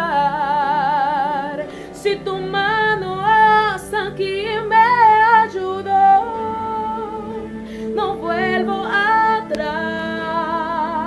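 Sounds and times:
woman singing a worship song: 0.0 - 11.0.

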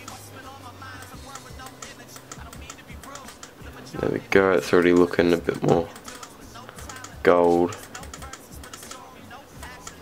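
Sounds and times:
faint background music: 0.0 - 10.0
computer keyboard and mouse clicks: 1.0 - 3.6, 5.8 - 9.1, 9.7 - 10.0
wavering singing voice: 5.6 - 10.0.

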